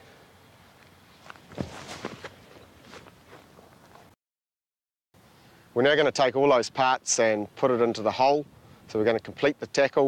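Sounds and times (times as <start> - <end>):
studded footsteps on grass: 0.6 - 4.1.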